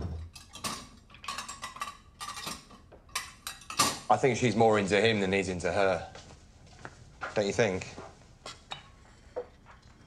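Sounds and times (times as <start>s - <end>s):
crockery and cutlery clinking: 0.0s - 4.4s, 8.5s - 10.0s.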